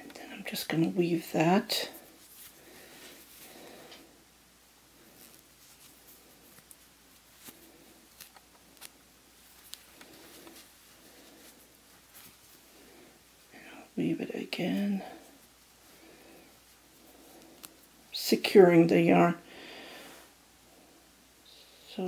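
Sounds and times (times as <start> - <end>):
yarn rustling through wool: 0.3 - 19.4.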